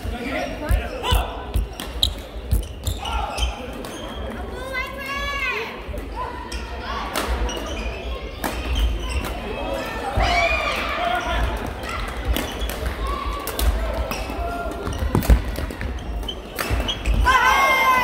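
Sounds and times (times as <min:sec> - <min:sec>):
sneakers squeaking on court floor: 0:00.3 - 0:04.4, 0:07.4 - 0:09.5, 0:12.2 - 0:12.9, 0:14.0 - 0:17.3.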